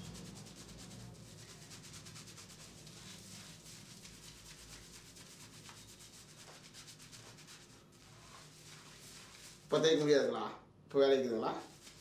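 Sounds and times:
fingers scrubbing wet hair: 0.0 - 9.7, 11.6 - 12.0.

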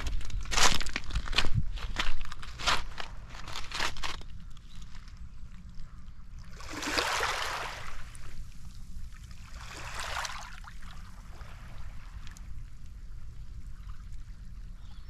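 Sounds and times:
steady low rumble: 0.0 - 6.7
waves washing over pebbles: 6.6 - 8.3, 9.5 - 10.8.

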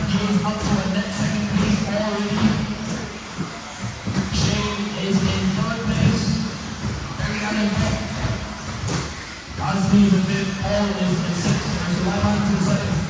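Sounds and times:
indistinct speech echoing: 0.0 - 13.0.

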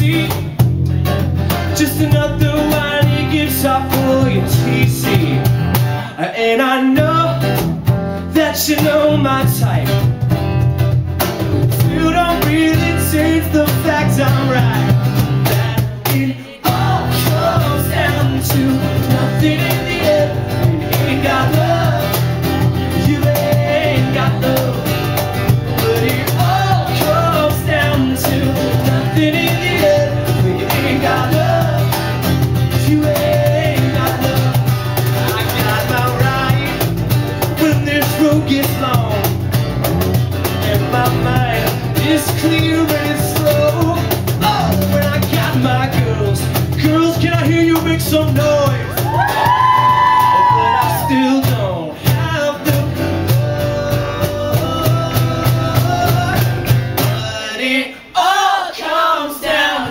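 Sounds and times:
live rock band playing: 0.0 - 6.2, 7.0 - 57.4.

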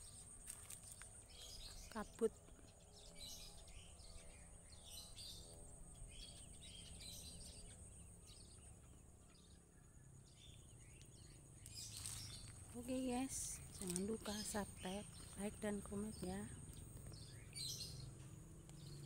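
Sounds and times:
bird chirps: 0.0 - 19.0.

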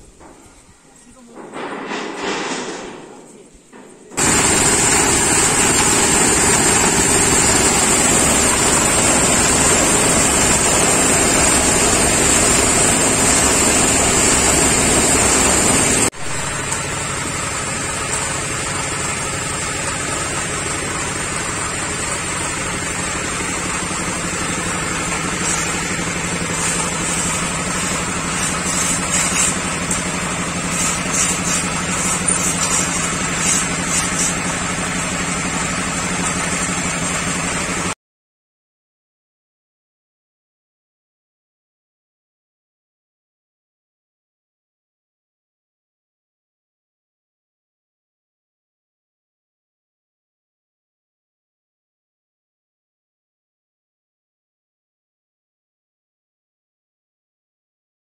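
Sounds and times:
motor running steadily: 4.2 - 37.9.

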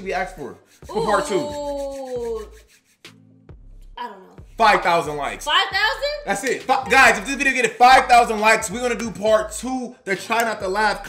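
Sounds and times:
woman's drawn-out ooh: 0.9 - 2.5.

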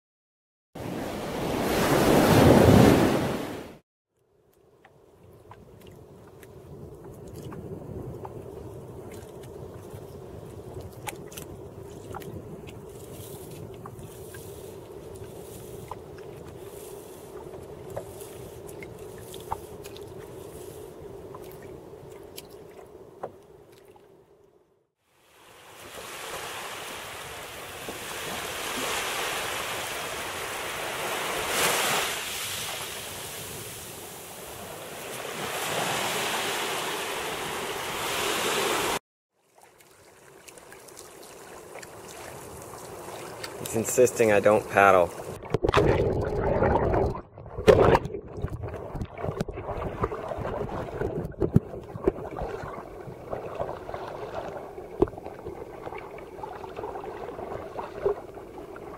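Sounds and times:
surf and wind: 0.8 - 3.8, 6.2 - 23.2, 25.2 - 39.0, 40.6 - 45.4, 51.7 - 58.9.

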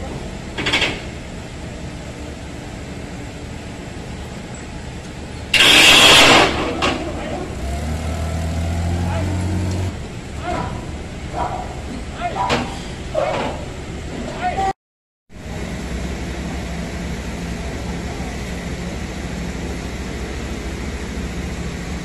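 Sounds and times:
forklift engine humming: 0.0 - 14.7, 15.4 - 22.0
loud hissing burst: 5.5 - 6.8.

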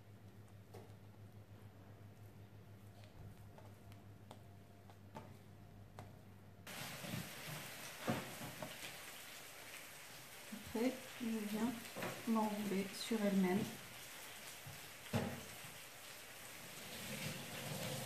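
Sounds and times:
low steady hum: 0.0 - 6.8
hands rolling dough on countertop: 0.0 - 8.9
steady hiss: 6.7 - 18.0.

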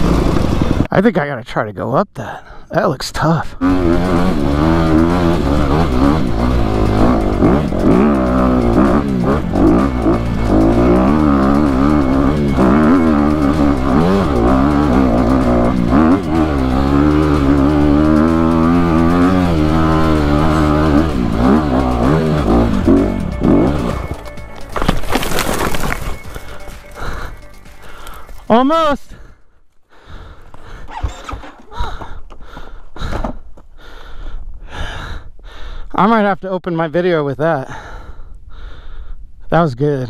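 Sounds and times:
motorcycle engine revving hard: 0.0 - 0.9, 3.6 - 24.4.

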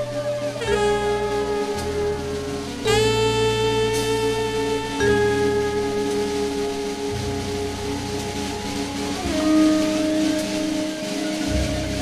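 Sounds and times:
bass: 0.0 - 12.0
jazz band sustained notes: 0.0 - 12.0.

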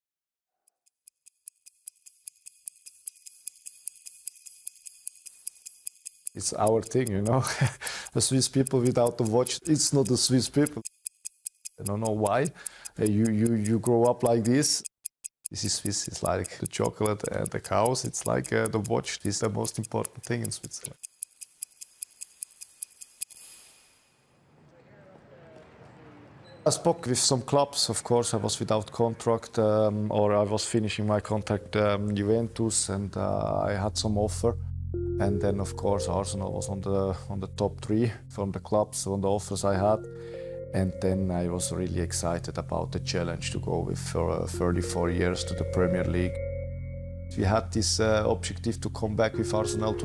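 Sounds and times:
watch ticking: 0.6 - 24.0, 39.7 - 46.6, 47.3 - 50.0
sharp click: 0.7 - 24.0.

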